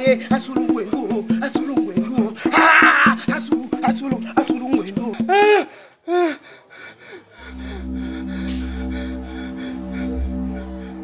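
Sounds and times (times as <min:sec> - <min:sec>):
short vocal cries: 0:02.5 - 0:03.2
low droning music with bass: 0:07.4 - 0:11.0.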